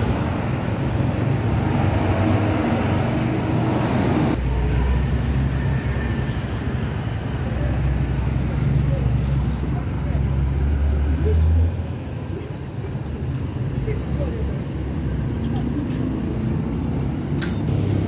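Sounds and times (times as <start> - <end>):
passing vehicle rush: 0.0 - 12.2, 13.4 - 18.0
motorbikes passing: 0.0 - 12.3, 13.9 - 18.0
passing car engines: 0.0 - 12.4, 13.1 - 18.0.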